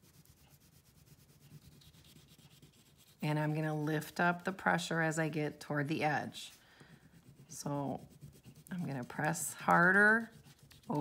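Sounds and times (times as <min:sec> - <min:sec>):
crayon rubbing on paper: 0:00.0 - 0:03.6, 0:06.1 - 0:11.0.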